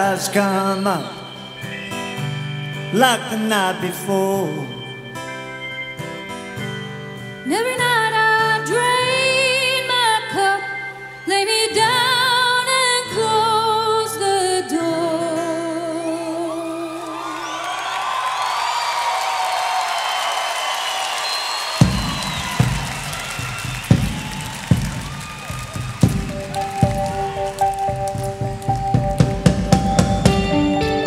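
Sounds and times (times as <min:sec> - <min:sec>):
wavering high tones: 0:00.0 - 0:12.4
plucked guitar notes: 0:00.0 - 0:16.3, 0:25.0 - 0:31.0
drum kit hits: 0:21.8 - 0:31.0.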